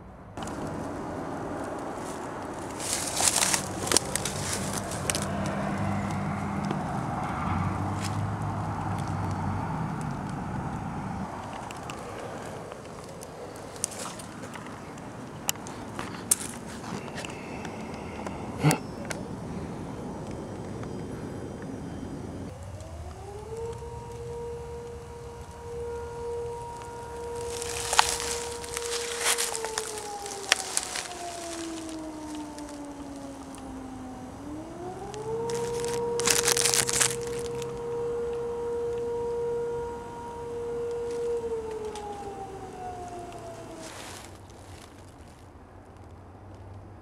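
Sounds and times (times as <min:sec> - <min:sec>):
warning siren wailing: 0:00.4 - 0:45.0
crackles and noise bursts: 0:20.0 - 0:46.8.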